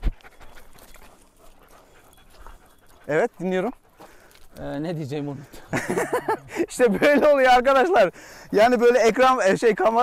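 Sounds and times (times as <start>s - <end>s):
dogs panting: 0.0s - 10.0s.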